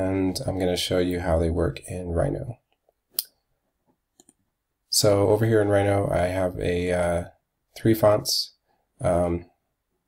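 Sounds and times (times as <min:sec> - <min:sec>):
computer mouse clicks: 0:04.2 - 0:04.4.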